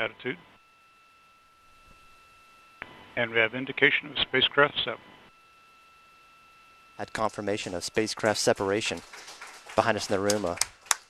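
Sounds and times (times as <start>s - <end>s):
thin steady high tones: 0.0s - 10.6s.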